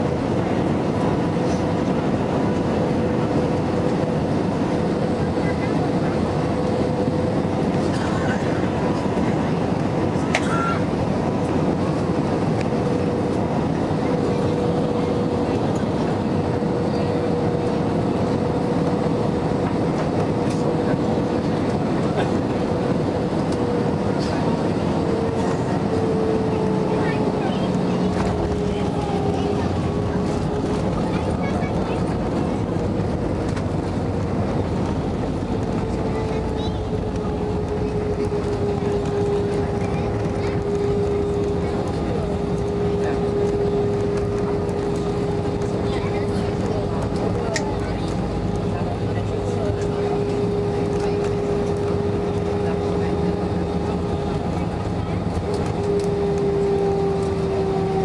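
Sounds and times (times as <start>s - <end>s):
aircraft touching down: 0.0s - 58.0s
airflow rush in cabin: 0.0s - 58.0s
jet engine hum: 0.0s - 58.0s.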